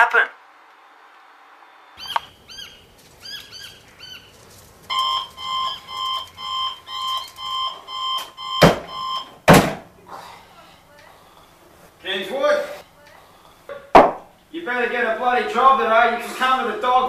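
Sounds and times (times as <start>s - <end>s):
birds chirping: 2.0s - 9.2s
alarm clock beeping: 4.9s - 9.4s
loud thump: 8.6s - 9.9s, 13.7s - 14.3s.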